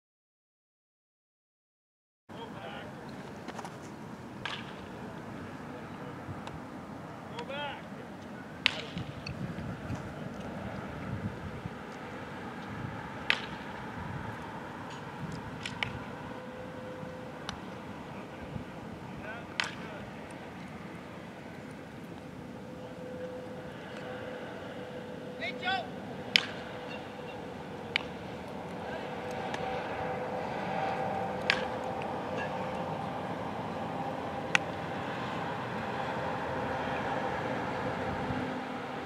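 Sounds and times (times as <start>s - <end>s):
baseball bat cracking ball: 3.4s - 5.2s, 8.6s - 9.4s, 13.2s - 17.9s, 19.4s - 20.5s, 26.2s - 33.1s, 34.4s - 34.9s.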